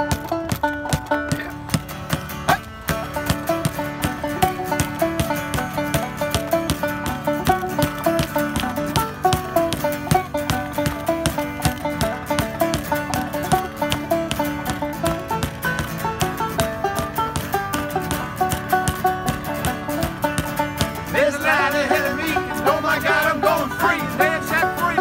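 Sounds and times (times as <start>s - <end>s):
acoustic guitar strumming: 0.0s - 25.0s
banjo picking rolls: 0.0s - 25.0s
sharp percussive clicks: 1.7s - 21.1s.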